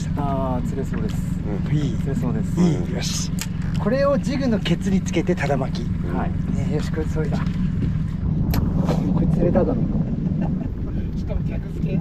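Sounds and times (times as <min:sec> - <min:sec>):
boat motor running: 0:00.0 - 0:12.0.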